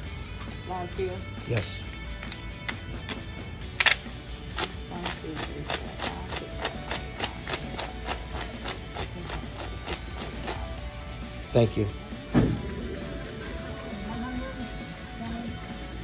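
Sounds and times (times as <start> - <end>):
background music: 0.0 - 16.0
paper bills snapping down: 5.5 - 10.7.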